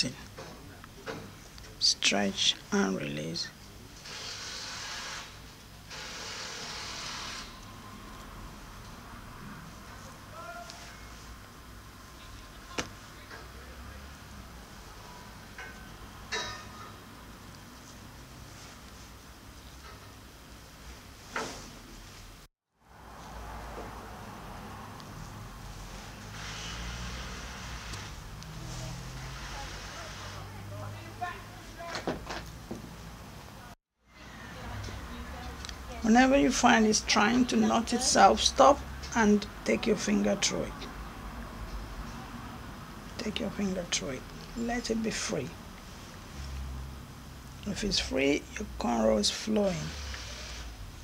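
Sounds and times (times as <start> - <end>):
low hum and hiss: 0.0 - 4.1.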